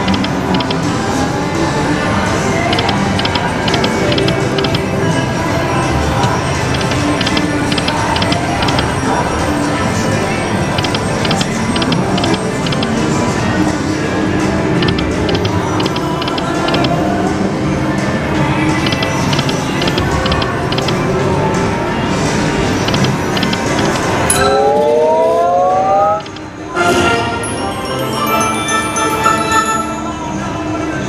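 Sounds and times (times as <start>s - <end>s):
electronic reel-spin ticking: 0.0s - 0.8s, 2.7s - 4.8s, 6.2s - 8.9s, 10.8s - 12.9s, 14.8s - 16.9s, 18.9s - 20.9s, 22.9s - 24.1s
slot machine game music: 0.0s - 1.4s, 2.2s - 17.2s, 18.7s - 30.2s
chiming bell tones jingle: 24.3s - 25.3s, 27.4s - 30.4s
rising three-tone sweep: 24.4s - 26.4s.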